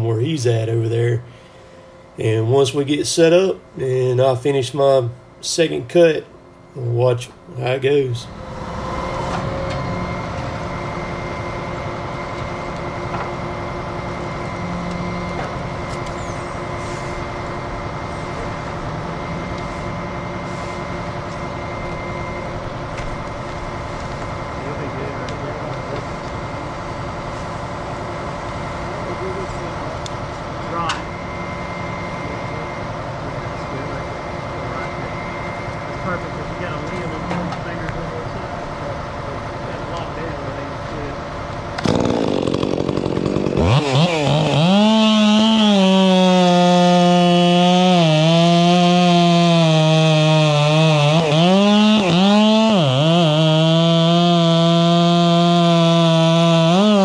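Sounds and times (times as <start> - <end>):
machinery running: 2.1 - 47.4
chainsaw cutting tree trunk: 41.7 - 57.0.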